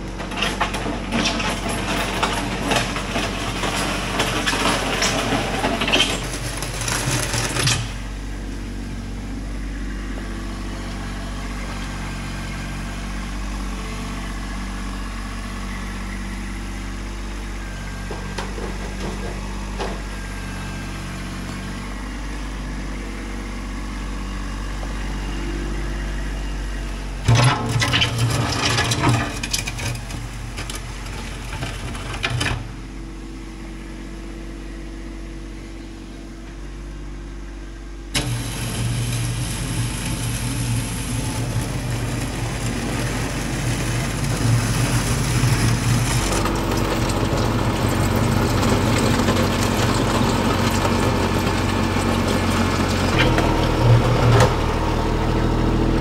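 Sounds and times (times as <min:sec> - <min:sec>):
tractor diesel engine running: 0:00.0 - 0:56.0.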